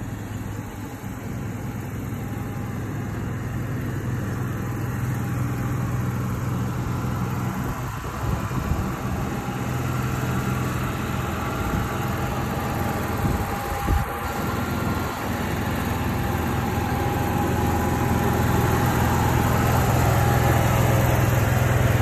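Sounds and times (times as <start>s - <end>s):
engine idling: 0.0s - 22.0s.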